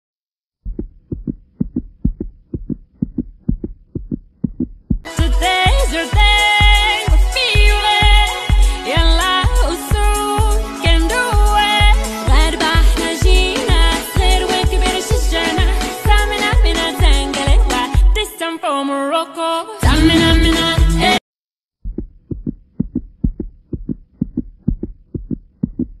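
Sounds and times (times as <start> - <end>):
heartbeat thumps: 0.6 - 5.4, 7.6 - 10.6, 11.4 - 14.8, 19.8 - 21.1, 21.8 - 26.0
music with heavy bass beat: 5.1 - 18.2, 19.8 - 21.2.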